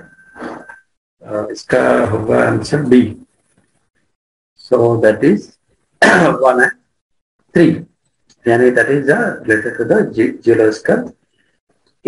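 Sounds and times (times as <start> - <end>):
man speaking: 1.2 - 3.3, 4.6 - 6.8, 7.5 - 11.2
man clearing throat: 6.0 - 6.5.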